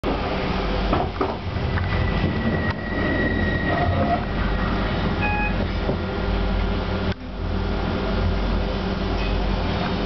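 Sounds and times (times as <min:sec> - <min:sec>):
train wheel-on-rail rumble: 0:00.0 - 0:10.0.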